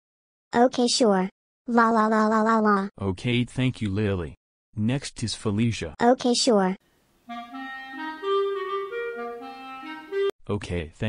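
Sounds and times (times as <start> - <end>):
wind instrument melody: 7.3 - 10.3.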